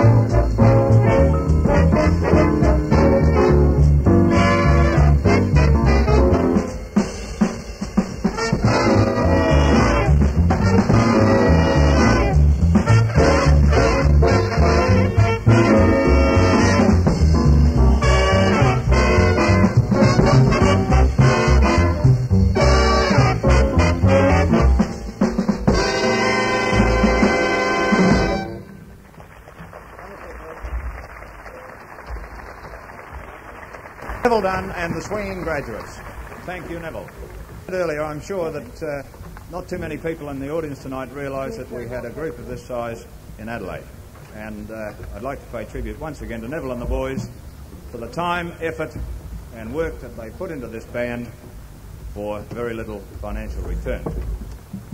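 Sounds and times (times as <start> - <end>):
sharp drum accents: 0.0 - 28.8
big band swing jazz: 0.0 - 28.9
brass: 0.0 - 29.0
live recording background noise: 0.0 - 54.9.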